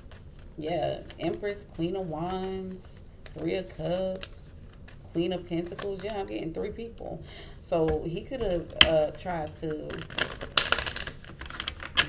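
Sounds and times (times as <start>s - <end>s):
cards being shuffled: 0.0s - 6.5s, 7.9s - 12.0s.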